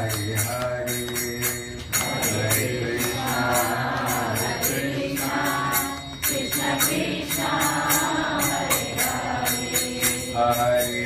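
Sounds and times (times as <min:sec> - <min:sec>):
man chanting into microphone: 0:00.0 - 0:04.8, 0:10.3 - 0:11.0
small hand cymbals beating: 0:00.0 - 0:11.0.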